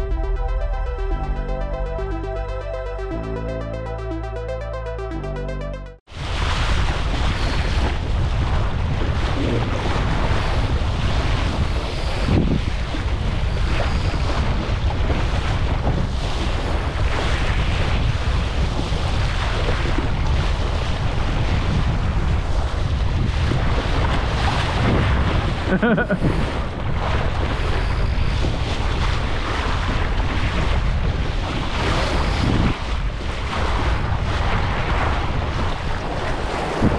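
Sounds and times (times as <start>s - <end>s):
wind buffeting microphone: 6.1s - 36.9s.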